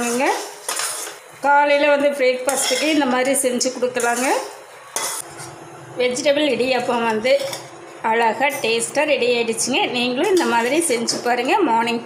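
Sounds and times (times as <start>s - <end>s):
metallic spoon scrape: 0.0s - 1.2s, 2.4s - 5.6s, 6.6s - 8.9s, 10.2s - 11.4s
spoon stirring noodles in pan: 0.0s - 5.7s.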